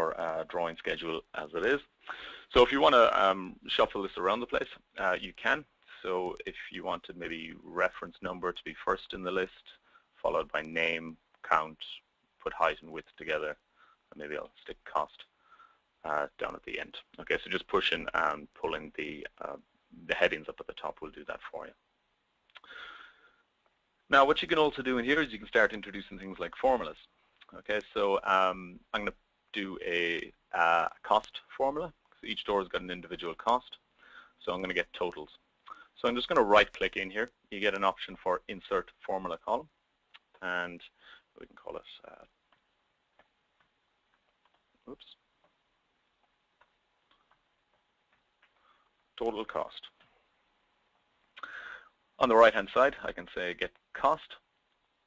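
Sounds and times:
person sniffing: 0:02.0 - 0:02.5, 0:51.4 - 0:51.9.

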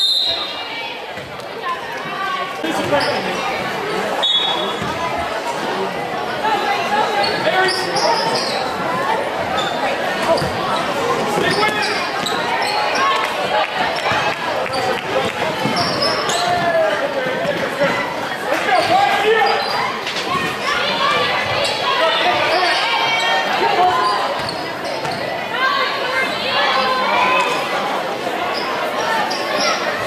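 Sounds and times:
crowd voices in gym: 0:00.0 - 0:30.0.

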